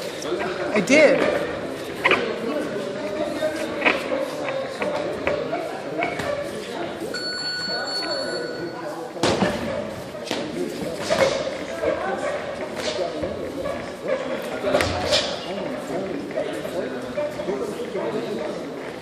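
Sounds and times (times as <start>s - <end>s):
voices in echoing room: 0.0s - 19.0s.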